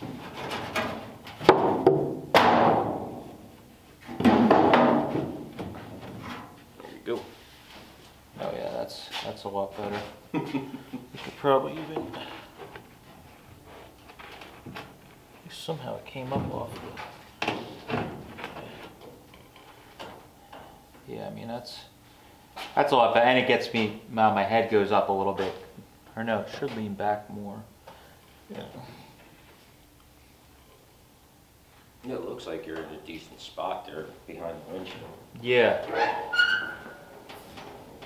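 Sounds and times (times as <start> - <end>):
wooden boards knocking: 1.4 - 3.1, 4.2 - 5.4
person shuffling: 6.2 - 14.3.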